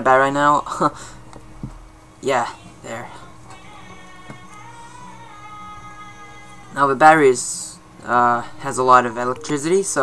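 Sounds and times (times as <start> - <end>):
quiet music with long held notes: 0.0 - 10.0.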